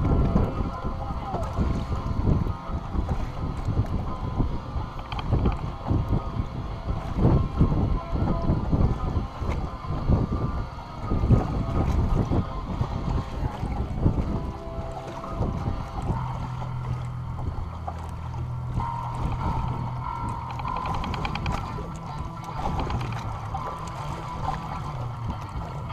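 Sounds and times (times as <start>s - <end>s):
steady low hum: 0.0s - 25.9s
wind buffeting microphone: 0.0s - 25.9s.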